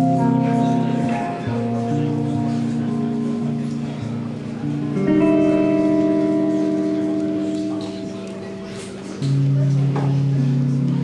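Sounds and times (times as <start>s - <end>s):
guitar chords ringing: 0.0s - 11.0s.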